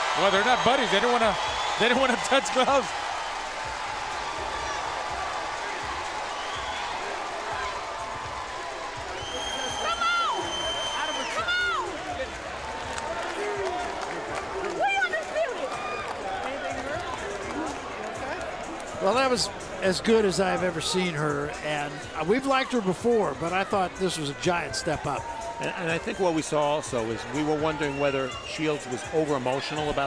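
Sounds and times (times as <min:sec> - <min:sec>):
crowd cheering and shouting: 0:00.0 - 0:30.0
long high whistle: 0:09.2 - 0:11.5.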